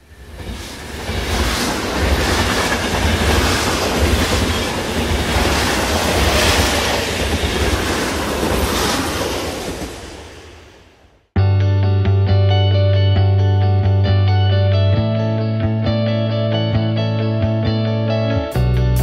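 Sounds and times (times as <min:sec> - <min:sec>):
train wheel clatter: 0:00.0 - 0:10.4
train rumbling on rails: 0:00.0 - 0:11.3.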